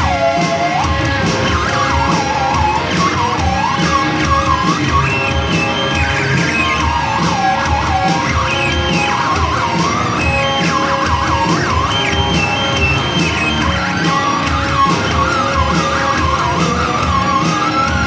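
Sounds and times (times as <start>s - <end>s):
live band music: 0.0s - 18.0s
wavering siren-like lead line: 0.0s - 18.0s.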